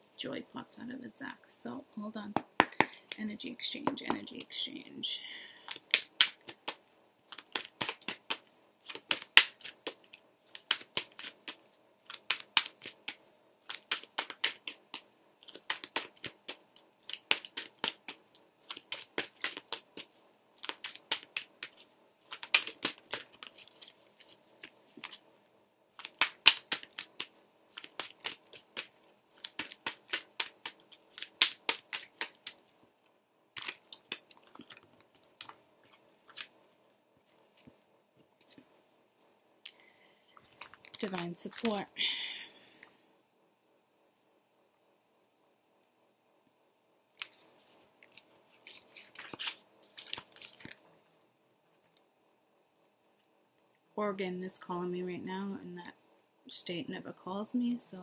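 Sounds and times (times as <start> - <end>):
cards being shuffled: 5.7 - 25.2, 26.0 - 32.6, 33.6 - 36.5, 48.1 - 50.8.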